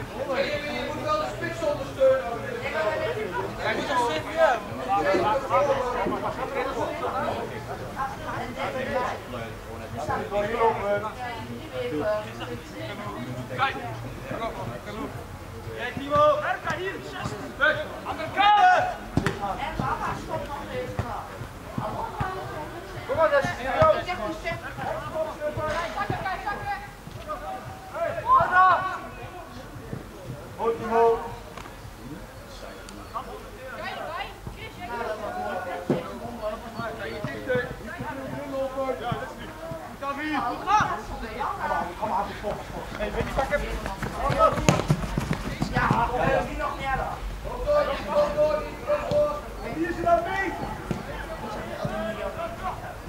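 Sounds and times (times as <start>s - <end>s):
players shouting: 15.8s - 29.8s, 33.8s - 53.0s
ball being kicked: 43.2s - 46.4s.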